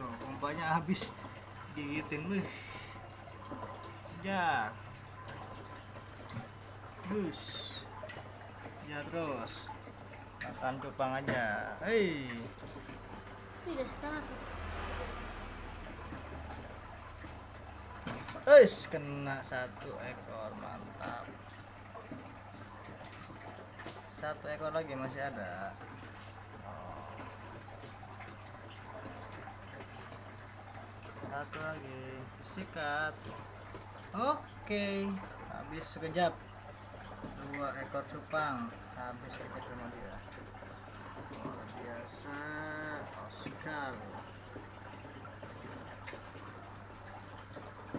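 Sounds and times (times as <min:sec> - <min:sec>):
water splashing into aquarium: 0:00.0 - 0:47.9.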